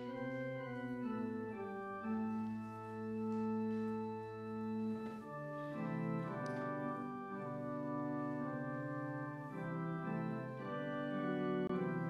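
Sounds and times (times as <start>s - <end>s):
church organ playing a hymn: 0.0s - 12.0s.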